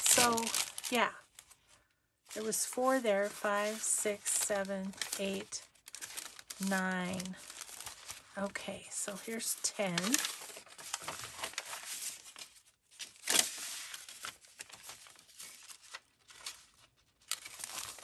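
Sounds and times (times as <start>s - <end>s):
paper rustling: 0.0s - 8.4s, 9.1s - 18.0s.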